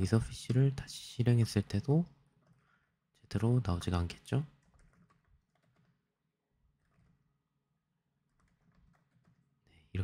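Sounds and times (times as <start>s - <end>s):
faint keyboard typing: 1.6s - 2.8s, 4.1s - 7.5s, 8.2s - 9.8s.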